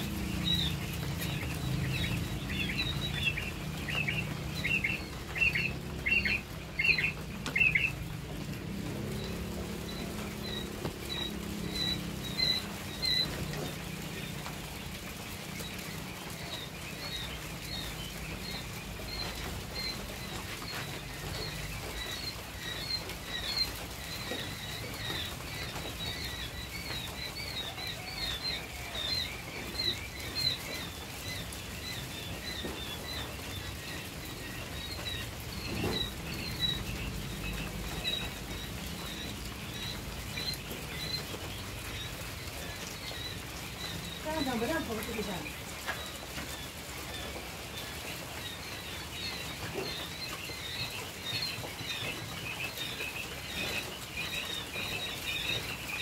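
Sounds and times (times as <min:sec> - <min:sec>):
quail chicks peeping: 0:00.0 - 0:56.0.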